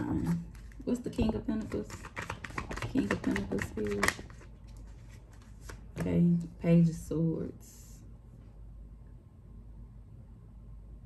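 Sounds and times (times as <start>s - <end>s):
cards shuffled by hand: 0.1s - 6.1s
clicks of cards being handled: 1.6s - 6.1s.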